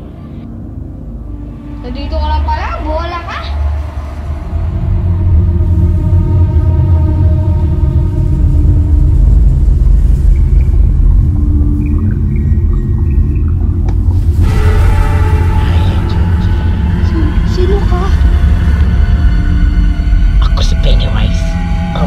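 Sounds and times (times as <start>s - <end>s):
deep steady rumble: 0.6s - 22.0s.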